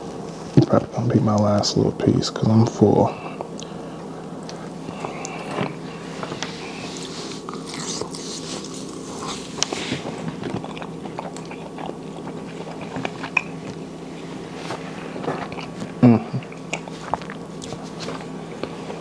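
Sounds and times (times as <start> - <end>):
close chewing with wet mouth sounds: 3.2 - 18.9.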